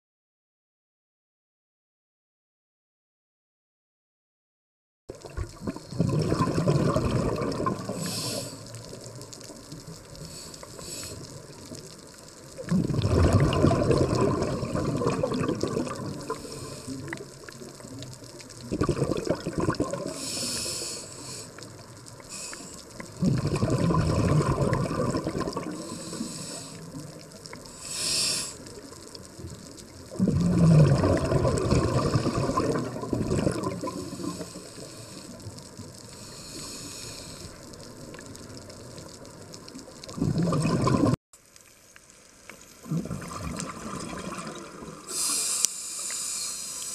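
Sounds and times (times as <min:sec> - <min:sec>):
regulator exhalation bubbles: 0:05.2 - 0:08.6, 0:12.6 - 0:17.3, 0:18.6 - 0:21.1, 0:22.3 - 0:28.7, 0:30.1 - 0:35.3, 0:40.1 - 0:41.2, 0:42.8 - 0:46.3
high hiss of inhalation: 0:07.8 - 0:08.9, 0:10.2 - 0:11.4, 0:16.2 - 0:17.2, 0:20.1 - 0:23.0, 0:25.7 - 0:28.8, 0:33.9 - 0:37.6, 0:45.1 - 0:46.9.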